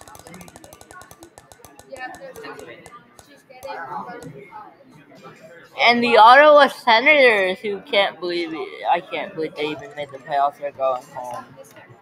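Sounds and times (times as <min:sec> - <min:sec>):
spinner wheel ticking: 0:00.0 - 0:03.3.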